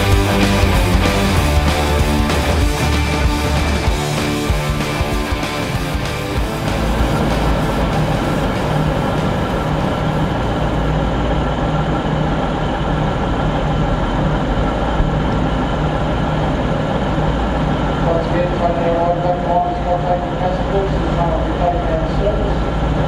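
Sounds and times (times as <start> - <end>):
diesel railcar idling: 0.0 - 23.0.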